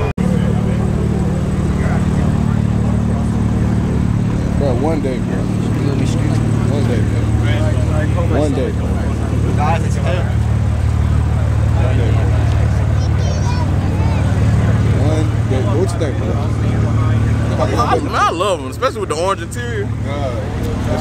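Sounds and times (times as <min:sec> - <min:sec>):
car engines idling: 0:00.0 - 0:21.0
people talking: 0:00.0 - 0:21.0.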